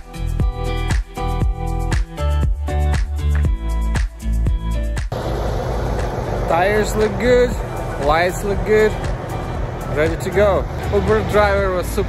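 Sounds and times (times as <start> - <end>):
diesel engine idling: 5.1 - 12.0
man talking: 6.4 - 9.1, 9.9 - 12.0.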